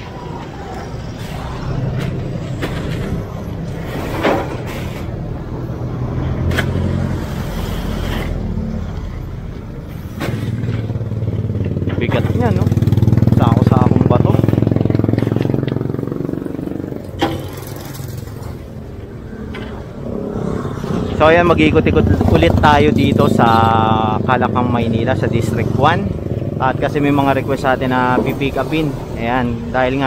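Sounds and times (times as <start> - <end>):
street traffic passing: 0.0 - 30.0
vehicle engine passing close: 0.0 - 30.0.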